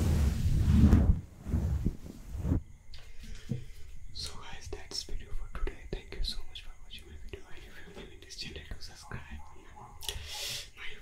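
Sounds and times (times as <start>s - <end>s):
man whispering: 4.1s - 11.0s.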